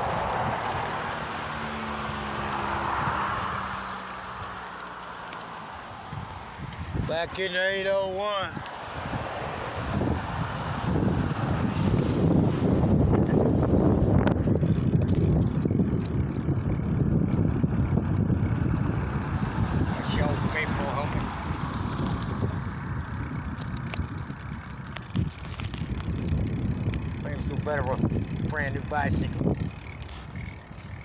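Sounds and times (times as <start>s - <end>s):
wind on microphone: 0.0s - 4.6s, 5.8s - 7.4s, 8.4s - 31.0s
road noise: 0.0s - 31.0s.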